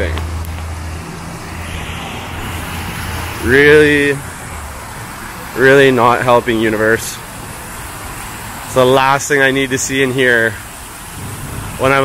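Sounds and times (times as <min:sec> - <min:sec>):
city traffic rumble: 0:00.0 - 0:12.0
water cascading down fountain: 0:00.0 - 0:12.0.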